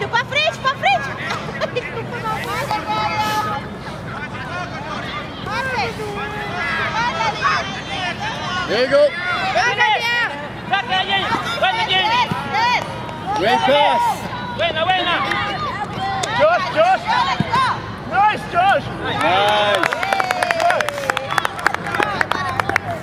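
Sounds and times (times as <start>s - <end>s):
spectators and players shouting: 2.1s - 23.0s.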